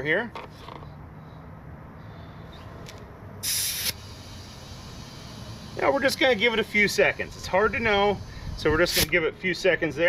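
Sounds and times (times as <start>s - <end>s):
compressed air hissing: 3.4s - 9.2s.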